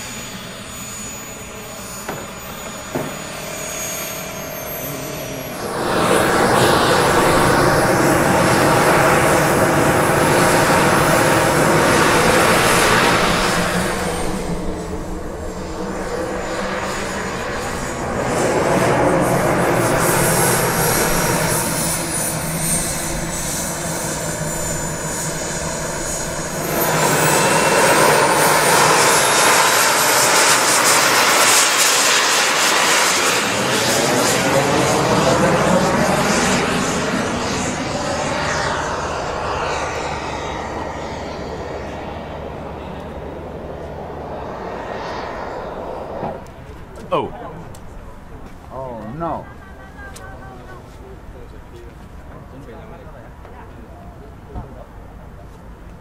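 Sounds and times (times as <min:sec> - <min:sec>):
jet turbine engine whine: 0:00.0 - 0:56.0.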